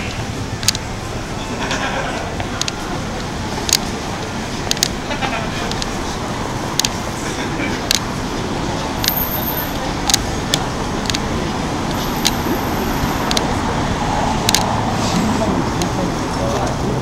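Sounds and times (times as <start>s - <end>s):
city street traffic: 0.0s - 17.0s
murmur of passers-by: 0.0s - 17.0s
sharp clicks: 0.6s - 0.9s, 2.6s - 5.0s, 5.6s - 6.0s, 6.7s - 7.0s, 9.0s - 11.3s, 11.9s - 13.5s, 14.4s - 14.8s.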